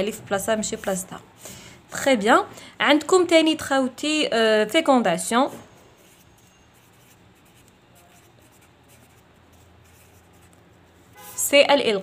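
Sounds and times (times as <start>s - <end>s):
marker writing on paper: 6.0s - 11.6s.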